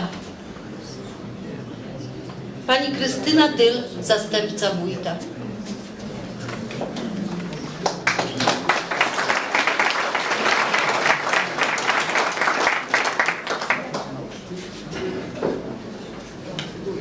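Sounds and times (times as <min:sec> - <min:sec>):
audience applauding: 0:07.8 - 0:14.3.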